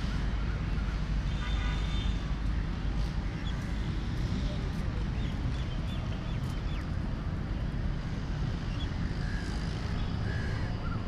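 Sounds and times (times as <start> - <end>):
city road traffic rumble: 0.0 - 11.0.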